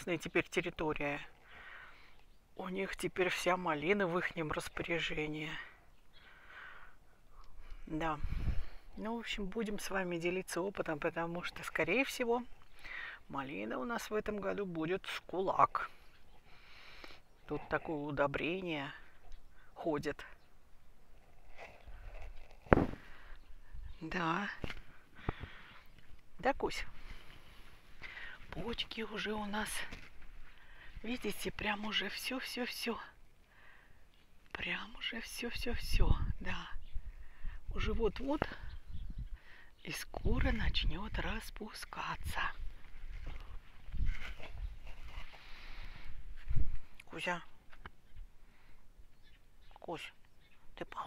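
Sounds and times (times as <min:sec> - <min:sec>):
faint outdoor background: 0:00.0 - 0:51.0
rustling: 0:21.0 - 0:23.6, 0:42.3 - 0:47.0
footsteps: 0:21.4 - 0:23.3
microphone handling noise: 0:21.4 - 0:23.4, 0:42.8 - 0:47.0
sharp thump: 0:22.7 - 0:23.0.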